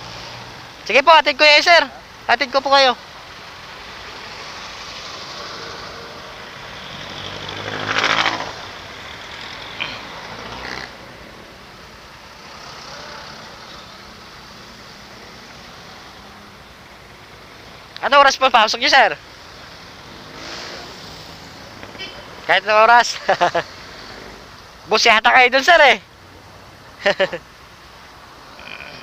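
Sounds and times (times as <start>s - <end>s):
street traffic noise: 0.0s - 29.0s
loud passing vehicle: 3.5s - 11.7s, 12.3s - 16.6s, 19.6s - 24.6s.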